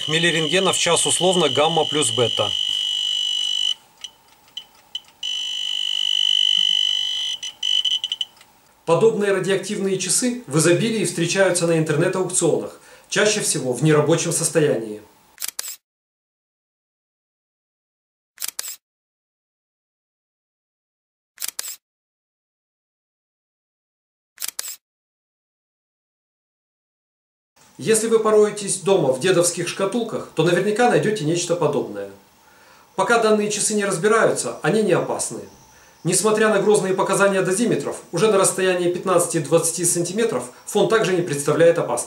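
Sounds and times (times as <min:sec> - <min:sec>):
dosimeter alarm tone and beeps: 0:00.0 - 0:08.4
camera shutter double click: 0:15.4 - 0:15.8, 0:18.4 - 0:18.8, 0:21.4 - 0:21.8, 0:24.4 - 0:24.8.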